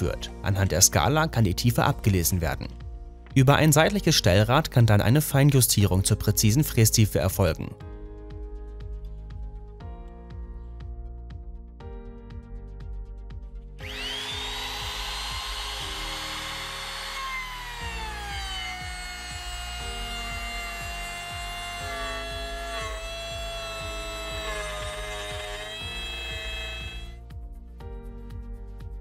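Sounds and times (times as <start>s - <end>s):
background music with steady beat: 0.0s - 29.0s
router bit cutting wood: 13.8s - 27.2s
router motor whining: 13.8s - 27.2s.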